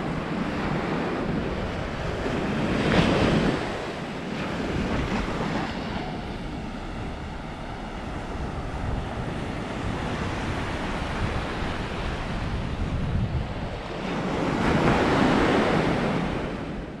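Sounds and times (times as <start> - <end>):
waves breaking on beach: 0.0 - 17.0
wind buffeting microphone: 0.0 - 17.0.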